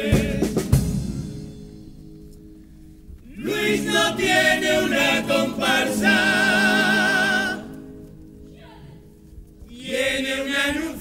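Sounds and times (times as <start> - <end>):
male chorus singing in parts: 0.0 - 0.8, 3.3 - 7.9, 9.7 - 11.0.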